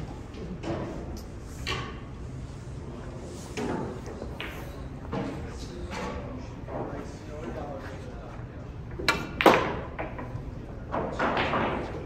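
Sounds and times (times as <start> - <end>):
hall room noise: 0.0 - 12.0
snooker balls rolling and knocking: 0.1 - 12.0.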